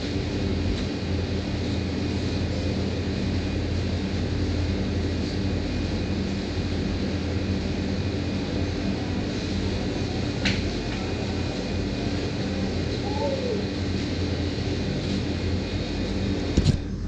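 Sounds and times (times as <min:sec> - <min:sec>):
air conditioner units humming: 0:00.0 - 0:17.0.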